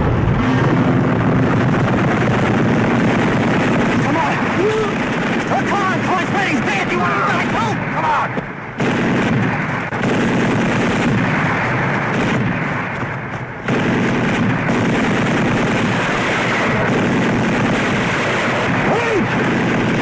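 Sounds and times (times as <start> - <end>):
gunfire and artillery fire: 0.3 - 20.0.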